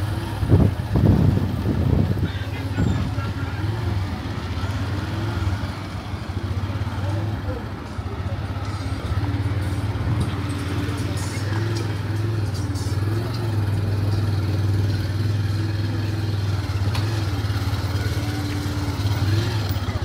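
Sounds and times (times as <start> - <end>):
motorcycle engine running: 0.0 - 20.0
road noise: 0.0 - 20.0.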